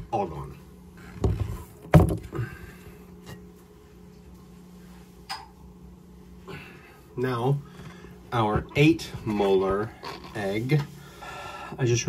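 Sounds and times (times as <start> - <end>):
low steady hum: 0.0 - 12.0
knocks in plastic bin: 1.2 - 2.3.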